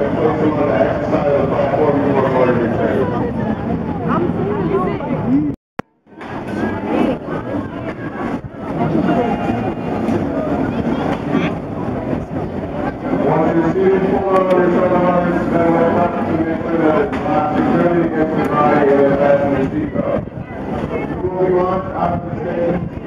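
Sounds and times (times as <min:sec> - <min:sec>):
people talking indistinctly: 0:00.0 - 0:05.6, 0:06.2 - 0:23.0.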